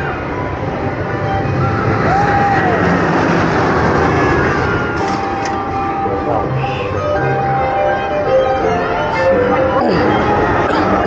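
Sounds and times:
roller coaster rolling on track: 0.0 - 11.0.

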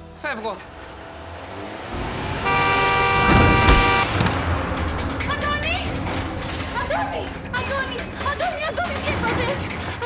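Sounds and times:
car driving past: 0.4 - 5.3
car horn long blast: 2.3 - 4.2.

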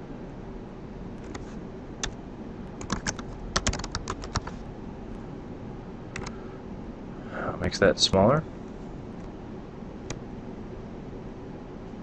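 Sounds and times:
typing on computer keyboard: 2.8 - 4.5, 6.2 - 6.4.

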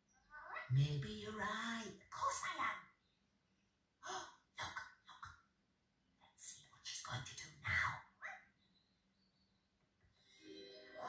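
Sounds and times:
wordless television vocal sounds: 0.2 - 2.9, 4.0 - 5.5.

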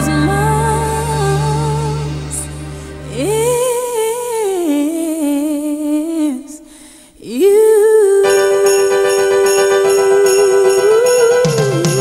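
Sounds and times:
low backing music: 0.0 - 4.4
solo voice singing wordless line: 0.0 - 12.0.

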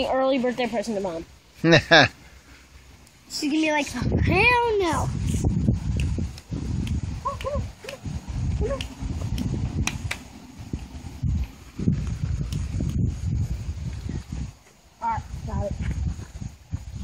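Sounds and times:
low rumble: 4.0 - 14.5.

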